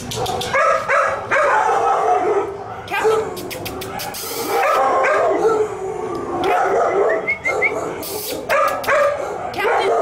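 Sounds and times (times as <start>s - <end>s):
dog yipping: 0.0s - 2.3s, 2.9s - 5.6s, 6.4s - 10.0s
dogs barking and howling: 0.0s - 10.0s.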